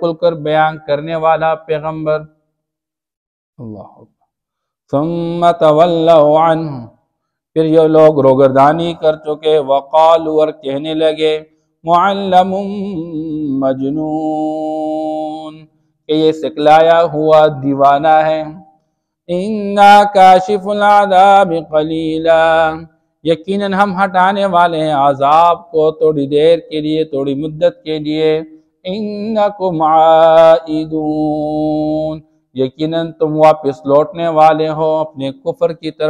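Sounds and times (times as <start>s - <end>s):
man chanting melodically: 0.0s - 2.4s, 3.6s - 4.1s, 4.9s - 7.0s, 7.6s - 18.7s, 19.3s - 36.0s.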